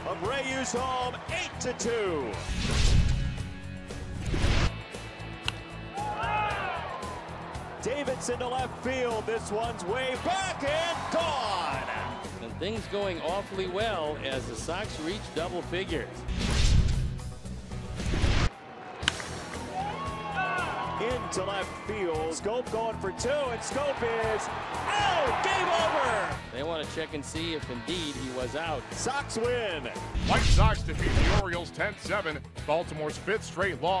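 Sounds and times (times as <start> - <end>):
ballpark crowd noise: 0.0 - 2.4, 5.4 - 15.7, 18.5 - 30.2
stadium ambience: 4.9 - 15.3.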